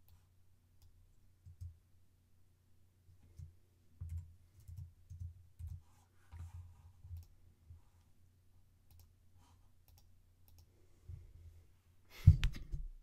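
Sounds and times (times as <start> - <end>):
computer mouse clicks: 3.3 - 6.5, 7.1 - 7.4, 8.9 - 9.1, 9.8 - 10.7
computer keyboard keystrokes: 3.4 - 5.8.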